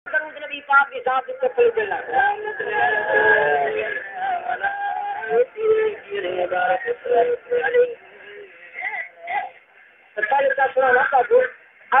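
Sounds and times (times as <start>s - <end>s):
man singing devotional song: 2.0s - 9.2s.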